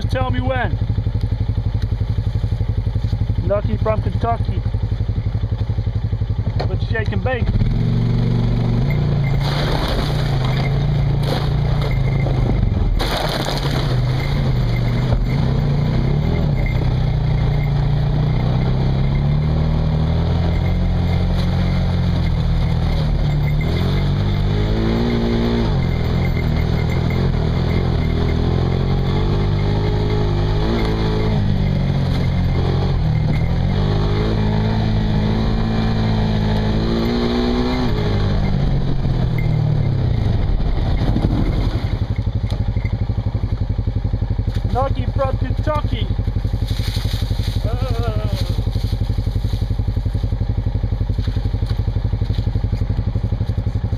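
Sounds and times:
off-road vehicle engine revving: 0.0s - 53.9s.

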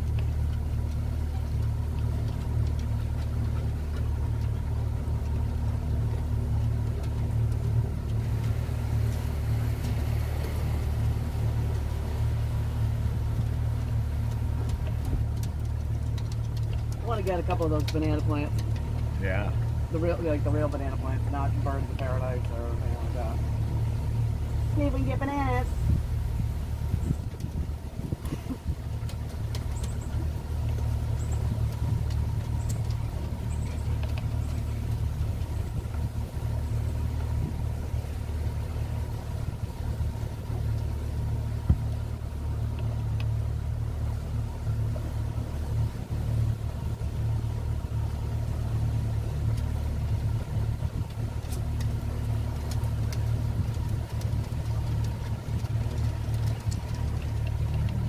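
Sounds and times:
outboard motor idling: 0.0s - 58.0s.

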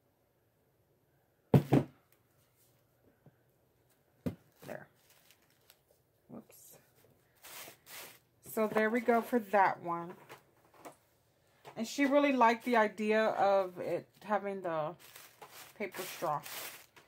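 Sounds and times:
tissue paper crinkling: 4.6s - 6.0s, 7.3s - 8.2s, 14.9s - 17.0s.

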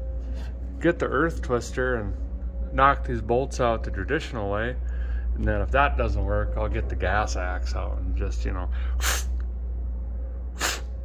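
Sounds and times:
steady low hum: 0.0s - 11.0s
man hissing breathily: 8.8s - 9.3s, 10.6s - 10.9s.

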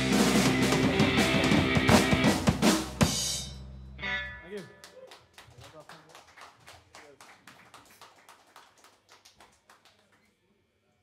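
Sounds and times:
faint scattered hand clapping: 4.5s - 10.4s.

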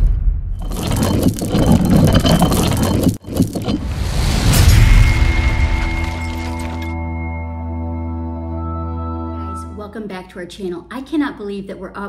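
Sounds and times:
rumbling scraping noise: 0.6s - 6.8s.

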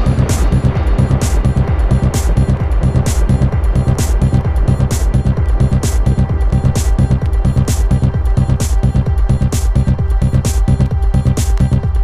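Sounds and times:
electronic trance beat: 0.0s - 12.0s
pulsing bass line: 0.0s - 12.0s.

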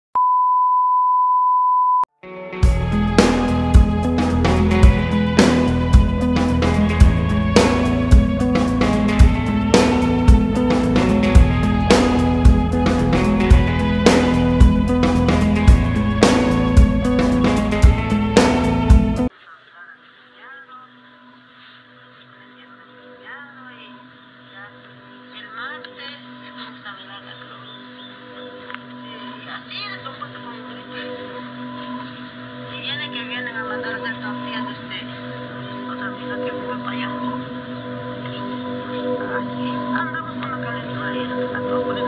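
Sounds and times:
steady test tone beep: 0.2s - 2.1s
steady low hum: 2.8s - 19.3s.

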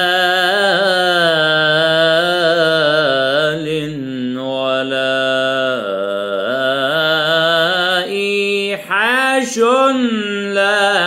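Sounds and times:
man singing melismatic notes: 0.0s - 11.0s.

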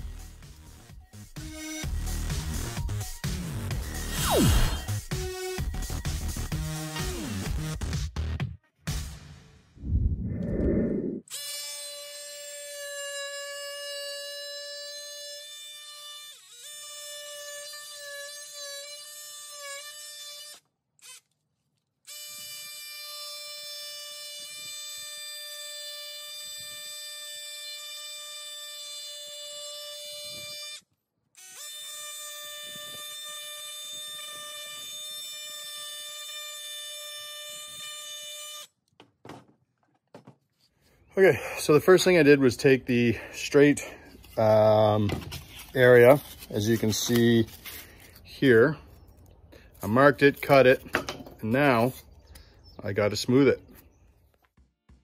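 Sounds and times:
oscillating multi-tool buzzing: 11.3s - 21.4s, 22.1s - 38.8s.

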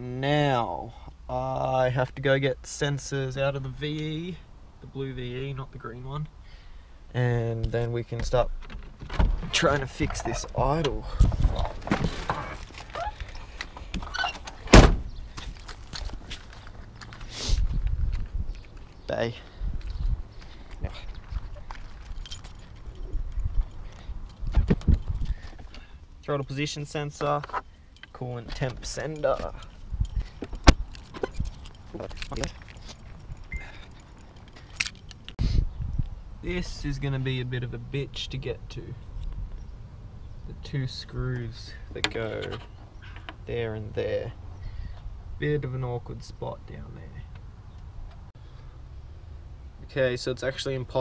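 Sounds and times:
person climbing out of car: 8.2s - 18.8s, 19.8s - 25.9s, 28.4s - 35.3s
loud thump: 14.7s - 15.1s
keys jangling: 21.7s - 25.8s, 29.0s - 35.4s.

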